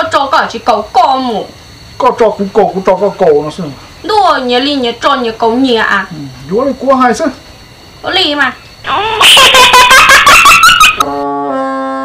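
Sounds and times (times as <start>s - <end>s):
loud laughter: 8.9s - 11.0s.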